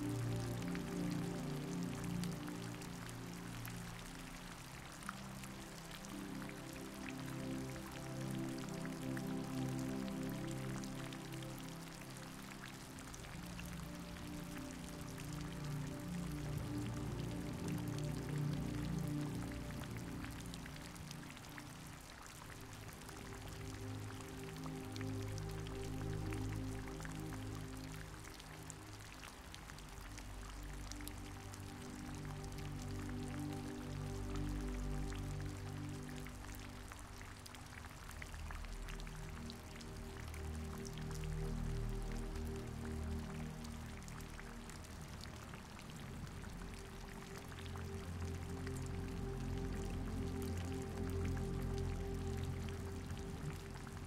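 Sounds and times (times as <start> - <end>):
slow low chords: 0.0 - 54.0
steady rain pattering: 0.0 - 54.0.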